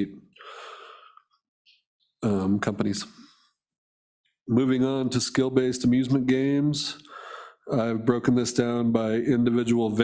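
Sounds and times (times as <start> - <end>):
man breathing in: 0.4 - 1.3, 7.1 - 7.7.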